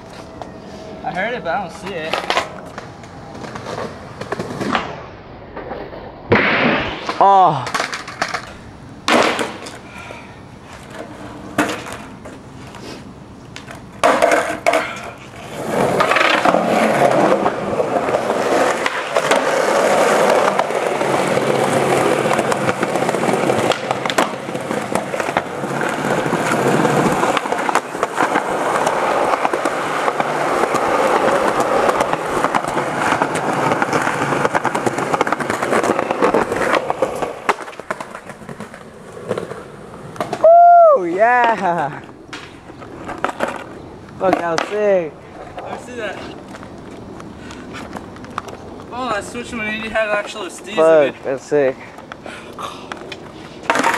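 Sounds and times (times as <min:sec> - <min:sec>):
skateboard wheels on concrete: 0:00.0 - 0:53.9
person shouting: 0:40.4 - 0:41.6.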